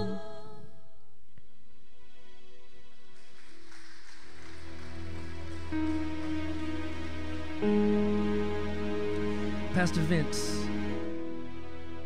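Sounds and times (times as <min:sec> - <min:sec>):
soft instrumental band music: 0:04.8 - 0:12.0.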